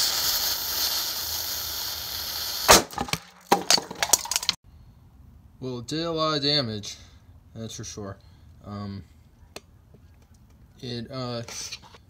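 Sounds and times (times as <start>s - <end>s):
fuse hissing and sputtering: 0.0s - 2.7s
blasting cap sharp crack: 2.6s - 4.6s.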